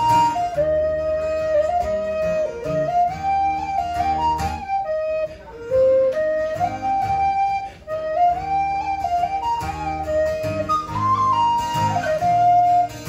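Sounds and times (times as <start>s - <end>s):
strummed acoustic guitar: 0.0s - 13.0s
tin whistle waltz melody: 0.0s - 13.0s.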